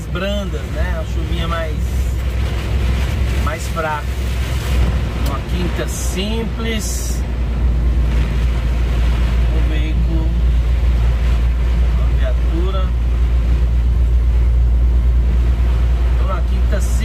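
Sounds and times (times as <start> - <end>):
diesel engine drone: 0.0 - 17.0.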